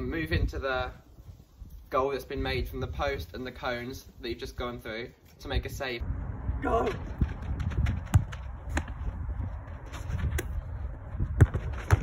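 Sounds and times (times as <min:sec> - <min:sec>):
wind buffeting microphone: 0:05.5 - 0:12.0
football thuds on boot and gloves: 0:11.3 - 0:12.0.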